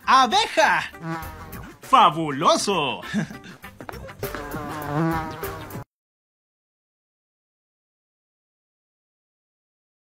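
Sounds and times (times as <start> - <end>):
cartoon bee buzzing: 0.9 - 1.8, 4.1 - 5.9.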